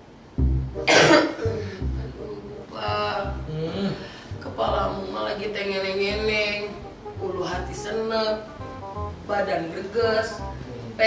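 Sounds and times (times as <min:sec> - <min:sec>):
quiet background music: 0:00.3 - 0:11.0
woman coughing: 0:00.9 - 0:01.6.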